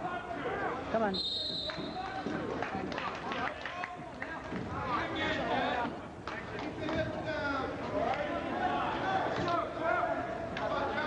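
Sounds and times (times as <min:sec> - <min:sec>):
whistle blast: 0:01.1 - 0:02.2
spectators shouting and talking: 0:07.0 - 0:11.0.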